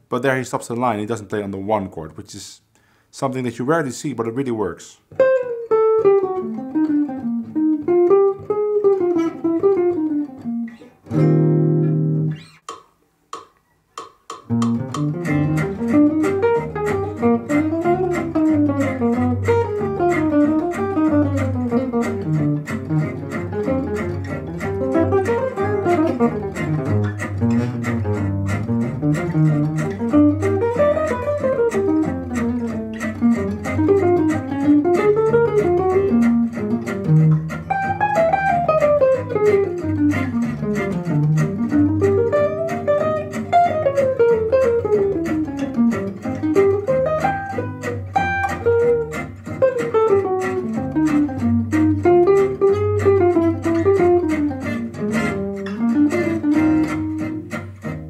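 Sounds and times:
jazz guitar fast line: 3.4s - 12.6s, 14.5s - 58.0s
walking bass line: 14.4s - 58.0s.

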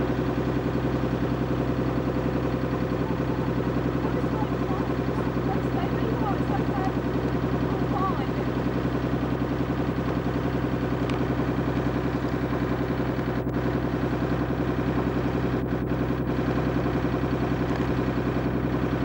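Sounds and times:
boat engine running: 0.0s - 19.0s.

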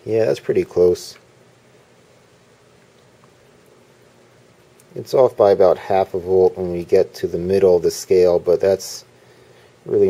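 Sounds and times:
faint electrical hum: 0.0s - 10.0s
low hiss: 0.0s - 10.0s.

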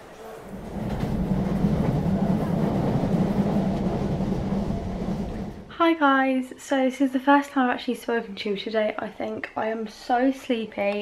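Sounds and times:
train rumble inside carriage: 0.0s - 5.7s.

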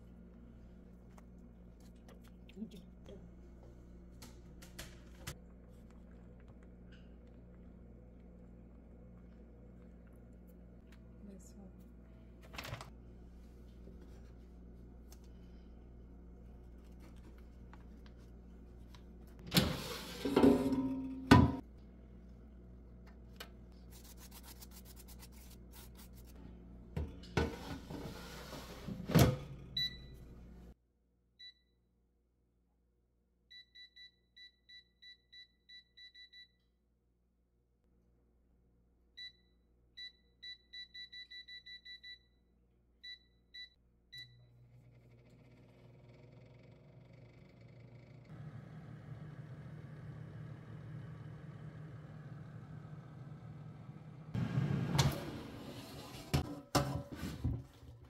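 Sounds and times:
air fryer fan humming: 11.9s - 23.7s, 44.1s - 57.8s
air fryer basket clunk: 19.5s - 21.6s.

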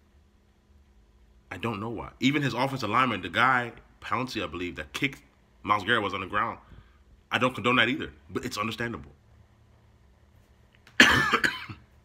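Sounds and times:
man coughing: 11.0s - 12.0s.

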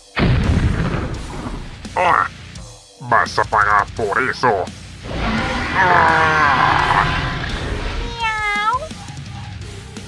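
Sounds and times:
cat meow: 8.0s - 8.9s.

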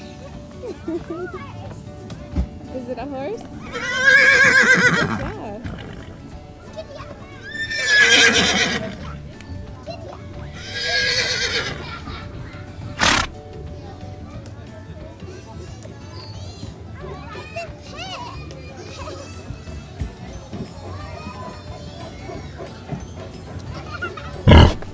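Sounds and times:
background music: 0.0s - 24.9s
horse whinnying: 3.4s - 6.2s, 7.4s - 9.1s, 10.5s - 12.0s, 13.0s - 13.3s, 24.5s - 24.9s.

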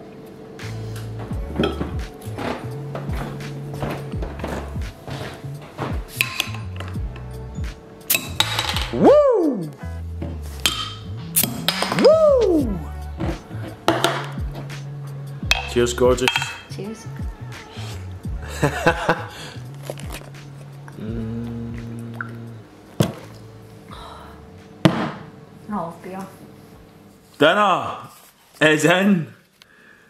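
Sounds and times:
music with bass beat: 0.6s - 22.6s
bottles clinking: 1.6s - 7.0s, 13.6s - 14.4s, 15.5s - 16.8s
gas hissing from bottles: 10.4s - 16.7s
beer bottles prised open: 19.7s - 20.4s.

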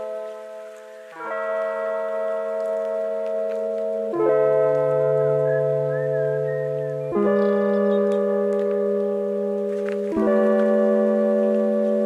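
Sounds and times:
background music of held chords: 0.0s - 12.0s.

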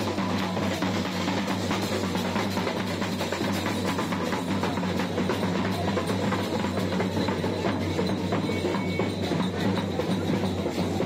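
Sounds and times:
barrel drum beaten in rhythm: 0.0s - 11.0s.

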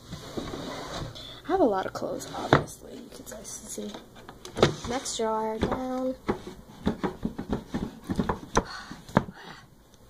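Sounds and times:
wooden drawer knocks and scrapes: 4.6s - 8.5s.

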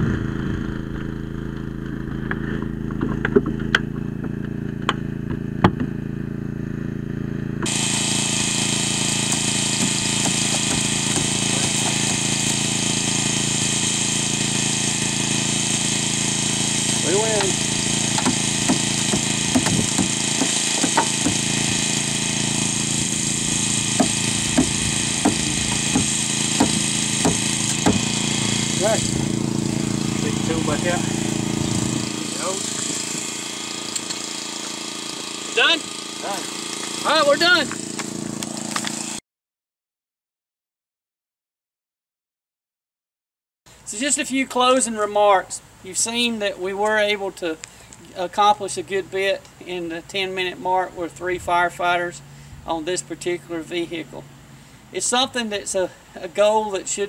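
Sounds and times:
hydraulic power unit engine running: 0.0s - 39.2s.

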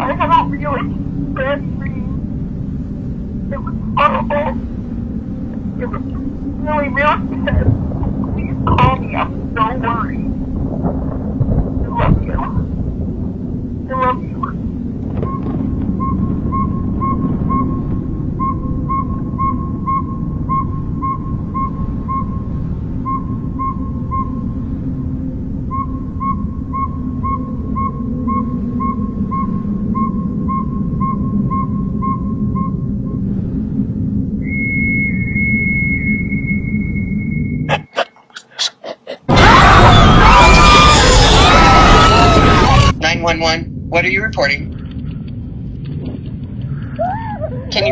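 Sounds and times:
low rumbling drone: 0.0s - 47.9s
burst of harsh distorted noise: 13.8s - 18.7s
pulsing beep: 15.2s - 33.3s, 34.4s - 38.0s.

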